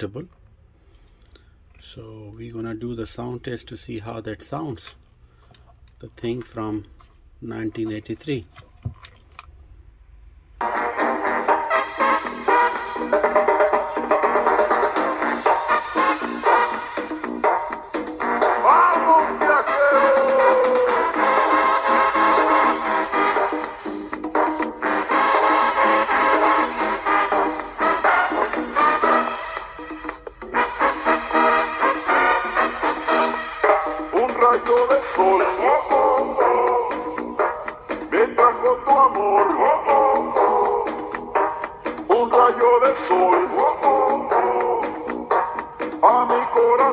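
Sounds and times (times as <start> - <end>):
pop music from small speaker: 10.6 - 46.9
man singing: 18.4 - 21.7, 34.1 - 37.3, 38.1 - 41.2, 42.0 - 45.1, 46.0 - 46.9.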